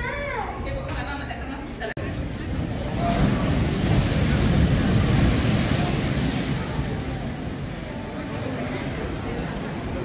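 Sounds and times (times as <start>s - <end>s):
surf breaking on rocks: 2.0s - 10.0s
wind buffeting microphone: 2.0s - 10.0s.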